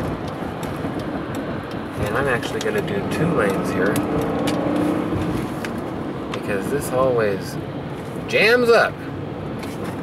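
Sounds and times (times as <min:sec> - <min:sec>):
car cabin road and engine noise: 0:00.0 - 0:10.0.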